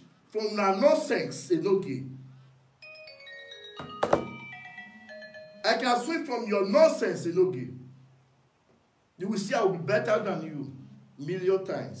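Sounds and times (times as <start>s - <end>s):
electronic chime melody: 2.8s - 6.2s
sharp knocks: 3.8s - 4.4s.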